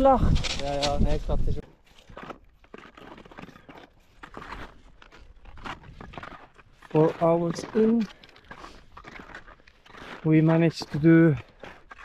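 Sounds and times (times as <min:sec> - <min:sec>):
gear crunching and rustling on snow: 0:00.0 - 0:12.0.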